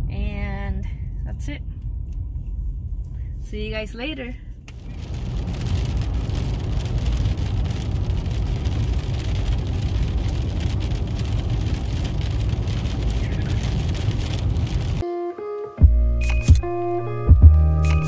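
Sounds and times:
road noise rumble: 0.0 - 15.0
hail pelting car windshield: 4.7 - 15.0
music: 15.0 - 18.0.

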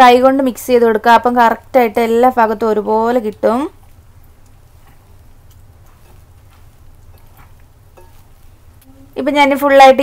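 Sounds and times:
steady low hum: 0.0 - 9.7
wet squishing of batter: 3.7 - 9.2.

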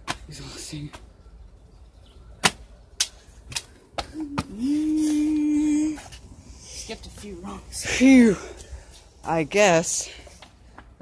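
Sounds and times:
jumps smacking on brick path: 0.0 - 0.3, 2.4 - 6.1.

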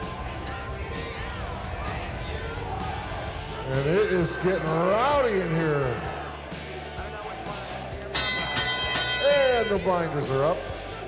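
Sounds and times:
background music: 0.0 - 11.0
bright ringing chime: 8.2 - 10.6.

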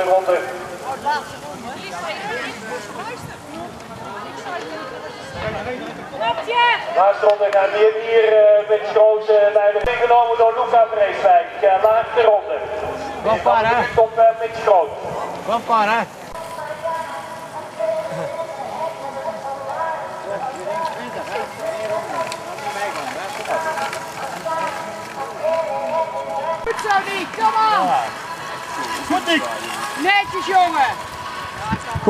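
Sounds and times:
man talking: 0.0 - 1.2, 7.0 - 16.2
outdoor background noise: 0.0 - 32.0.

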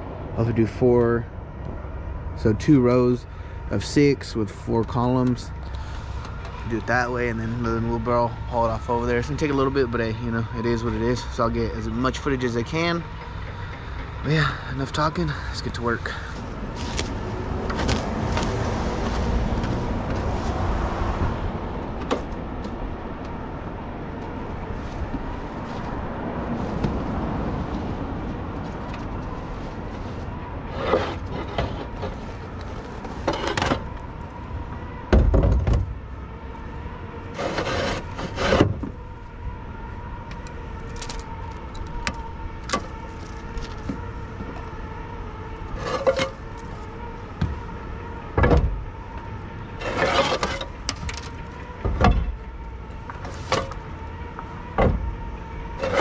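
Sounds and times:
outdoor background noise: 0.0 - 56.0.

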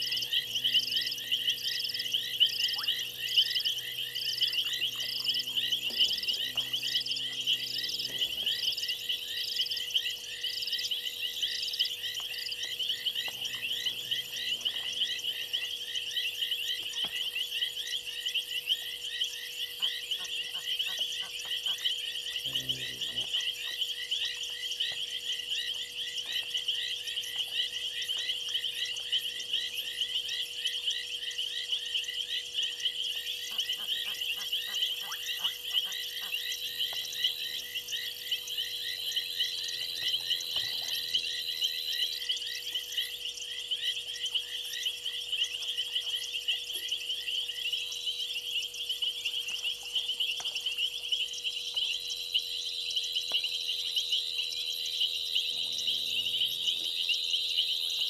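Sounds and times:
lower frog call: 0.0 - 16.8, 19.6 - 23.8, 33.2 - 44.0, 52.5 - 58.0
frog chorus: 0.0 - 58.0.

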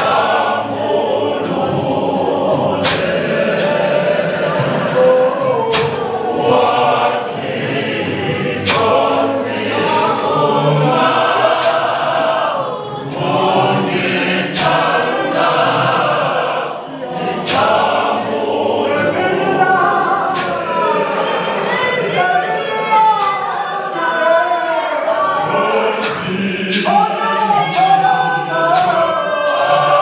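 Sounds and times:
choir singing gospel song: 0.0 - 30.0.

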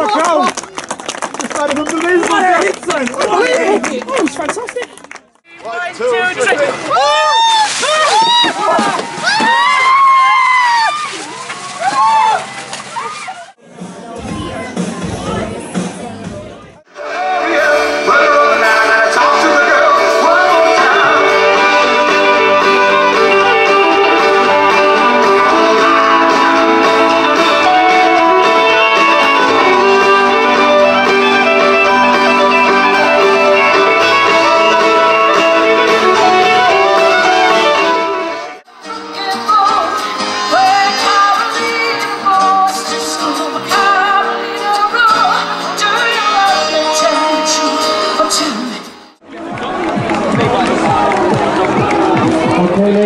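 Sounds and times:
people shrieking and yelling: 6.6 - 13.6
water splashing: 6.7 - 13.6
fiddle playing melody: 17.0 - 41.3
electric guitar accompaniment: 17.0 - 49.1.

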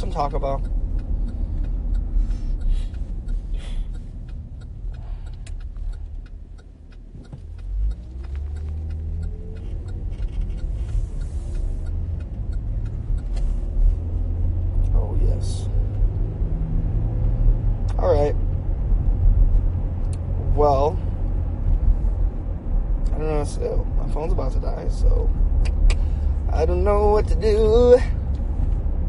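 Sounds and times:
car driving rumble from inside: 0.0 - 29.0.

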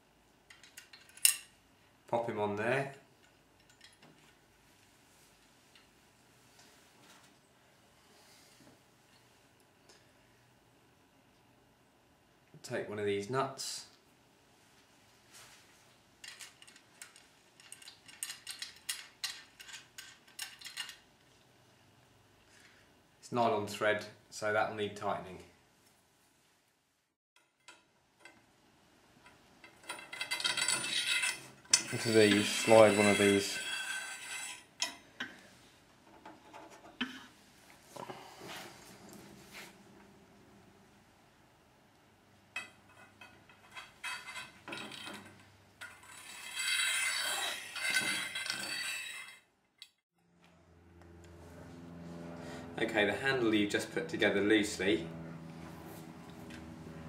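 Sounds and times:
bolts and nuts clinking on metal: 0.5 - 1.6, 3.2 - 4.4, 16.2 - 21.1, 29.2 - 35.4, 42.5 - 46.9, 47.8 - 50.0
bolt head scraping along rail: 29.9 - 34.7
low hum: 50.2 - 57.0.

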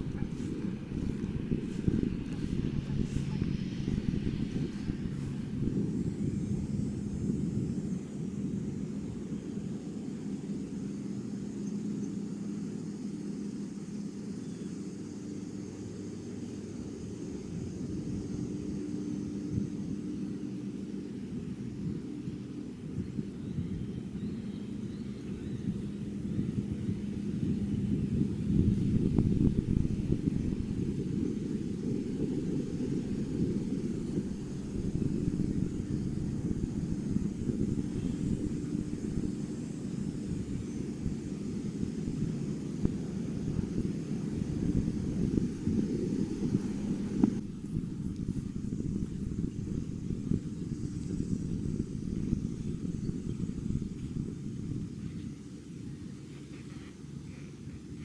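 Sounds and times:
faint hum: 0.0 - 58.0
low steady rumble: 0.0 - 58.0.

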